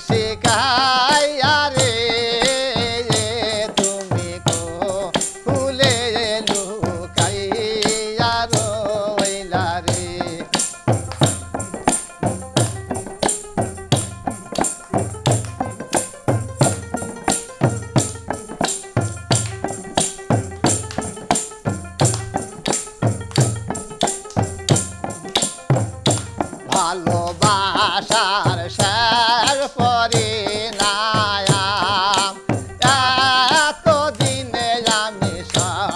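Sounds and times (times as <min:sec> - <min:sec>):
frame drum: 0:00.0 - 0:35.9
hand drum beat: 0:00.0 - 0:35.9
long-necked stringed instrument: 0:00.0 - 0:35.9
tambourine jingles: 0:00.0 - 0:35.9.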